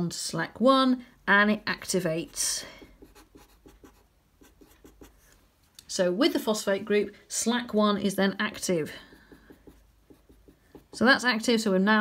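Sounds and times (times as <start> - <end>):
marker writing on paper: 2.1 - 5.4, 9.0 - 11.1.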